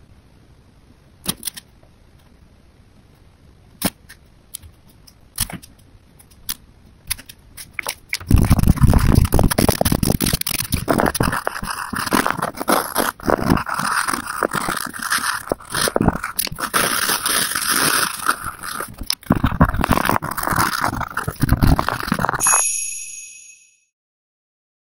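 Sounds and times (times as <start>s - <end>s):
pencil scratching on paper: 10.6s - 22.6s.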